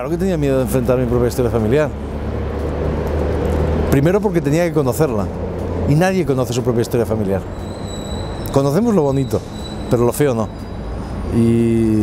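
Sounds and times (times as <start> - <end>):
city traffic noise: 0.0 - 12.0.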